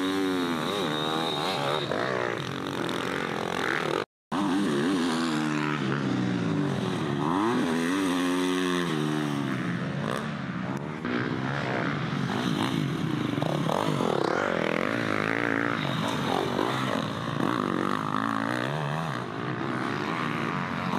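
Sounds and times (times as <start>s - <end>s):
dirt bike engines revving: 0.0s - 20.9s.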